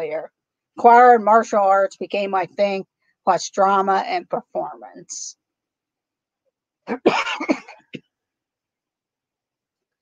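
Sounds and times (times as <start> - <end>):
woman coughing: 6.9 - 8.0.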